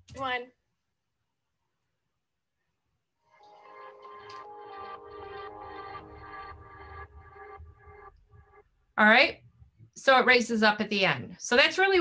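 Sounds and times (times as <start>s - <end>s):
instrumental background music: 3.2s - 8.7s.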